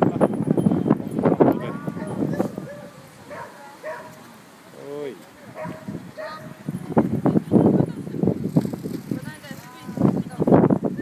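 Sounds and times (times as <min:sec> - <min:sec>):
dog calling: 0:01.6 - 0:04.3, 0:05.5 - 0:06.6
people talking: 0:04.8 - 0:08.3, 0:09.0 - 0:11.0.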